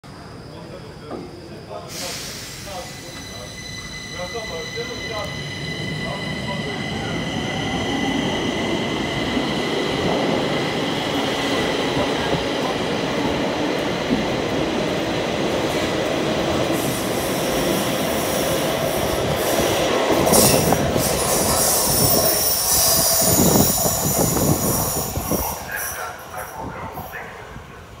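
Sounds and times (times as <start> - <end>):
train air hiss: 1.7 - 5.0, 16.7 - 27.8
high wheel squeal: 1.7 - 8.1, 20.2 - 26.6.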